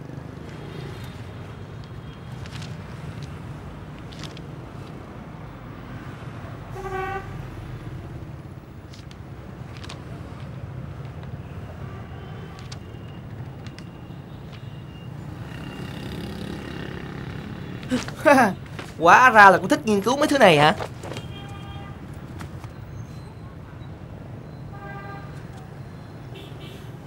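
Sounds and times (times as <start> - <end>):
distant road traffic rumble: 0.0 - 24.6
vehicle horn toot: 6.8 - 7.4.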